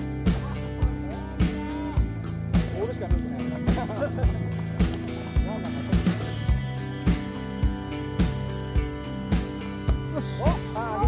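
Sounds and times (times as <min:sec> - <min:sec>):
background music with drum beat: 0:00.0 - 0:11.0.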